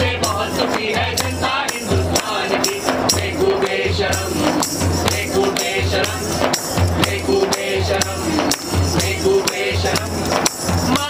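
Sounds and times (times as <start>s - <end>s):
group singing: 0.0s - 11.0s
tambourine jingles: 0.0s - 11.0s
large drum strokes: 1.6s - 11.0s.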